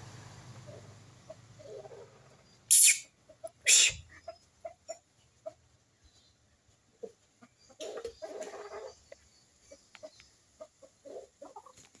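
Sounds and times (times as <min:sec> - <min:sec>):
chickens clucking: 0:00.4 - 0:12.0.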